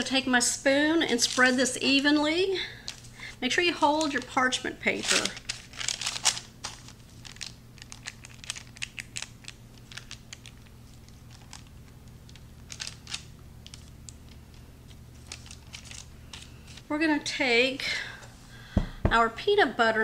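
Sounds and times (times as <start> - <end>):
parchment paper crinkling: 1.1 - 2.1, 2.8 - 16.9.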